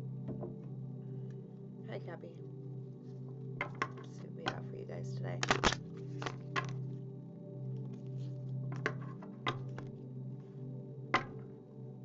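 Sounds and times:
soft background music: 0.0 - 12.0
cards being shuffled: 5.4 - 6.8, 7.8 - 9.9.

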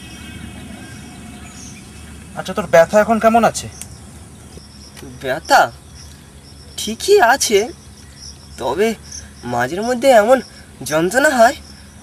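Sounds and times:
insects chirring: 0.0 - 12.0
man speaking: 2.4 - 3.8, 5.0 - 5.8, 6.8 - 7.8, 8.6 - 11.7.

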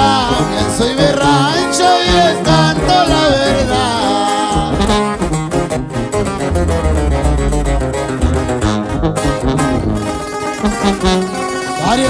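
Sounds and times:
tuba bass line: 2.9 - 11.2
acoustic guitars playing quick runs: 5.0 - 11.6.

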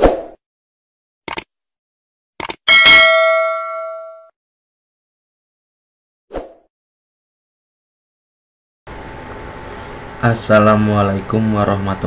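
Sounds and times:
quick double click: 1.3 - 1.5, 2.4 - 2.6
bright bell ding: 2.7 - 4.3.

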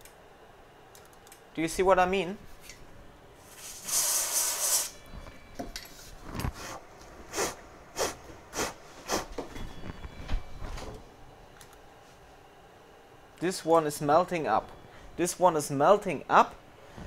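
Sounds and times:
freeze spray hissing: 3.5 - 5.0.

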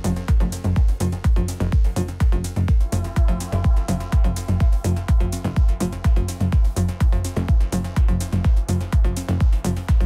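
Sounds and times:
techno kick drum: 0.0 - 10.0
held synth chords: 2.7 - 9.6.

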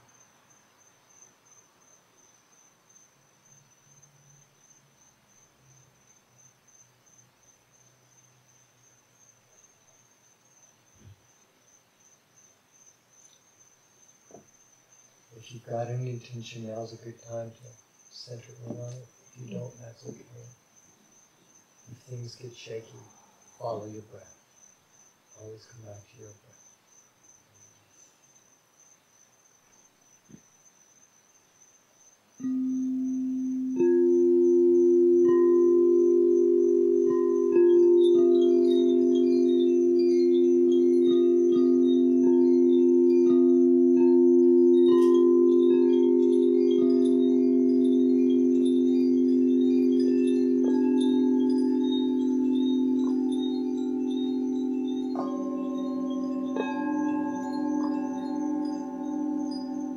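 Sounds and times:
high bright chime notes: 32.4 - 59.9
singing bowls pure tones: 32.4 - 59.9.

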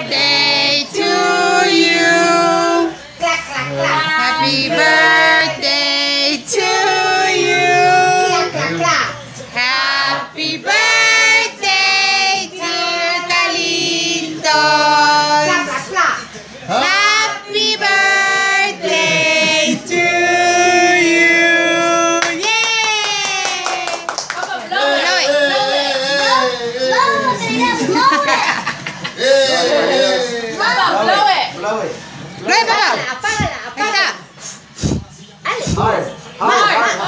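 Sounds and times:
group singing a birthday song: 0.0 - 22.7, 24.5 - 37.0.

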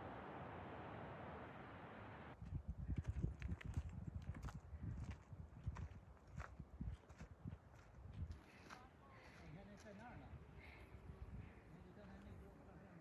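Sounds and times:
footsteps on a trail: 2.5 - 10.0.

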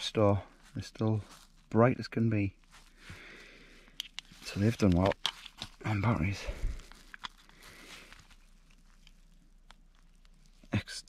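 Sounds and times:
batteries pulled out with clicks: 3.9 - 5.8, 7.0 - 7.6.

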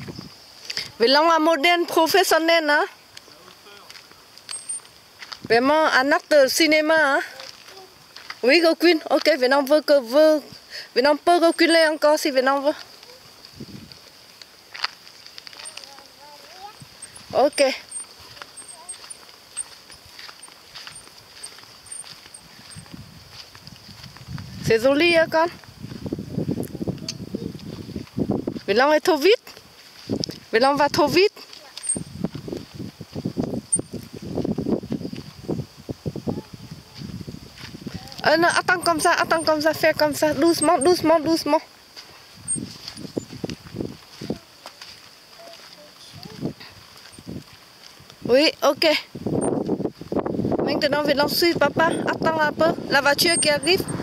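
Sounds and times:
faint high hiss: 0.0 - 24.0
footsteps on grass: 1.8 - 28.8, 29.5 - 54.0
short high chirps: 4.5 - 4.9.

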